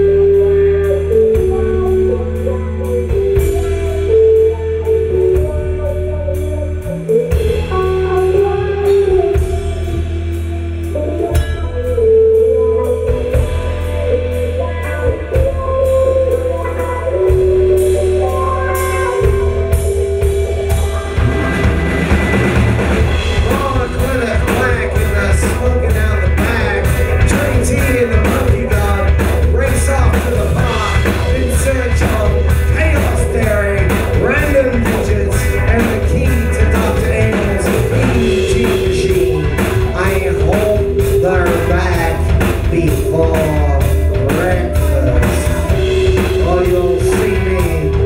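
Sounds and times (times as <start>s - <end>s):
drum kit with cymbal strikes: 0.0s - 48.0s
electric guitar lead melody: 0.0s - 48.0s
steady low bass part: 0.0s - 48.0s.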